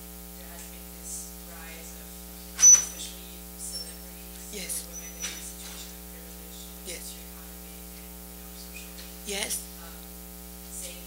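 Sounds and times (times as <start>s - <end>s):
electrical mains hum and buzz: 0.0s - 11.0s.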